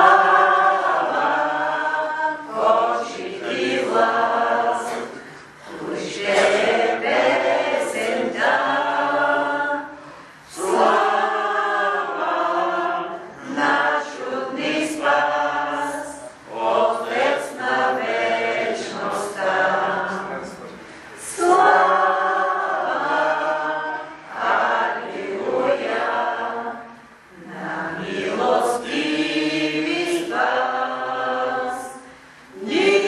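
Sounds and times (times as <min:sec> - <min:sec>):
group singing a hymn: 0:00.0 - 0:33.0.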